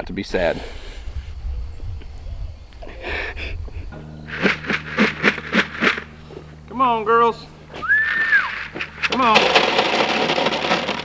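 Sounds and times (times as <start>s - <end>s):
grain rattling in plastic bucket: 4.3s - 6.1s, 8.4s - 11.0s.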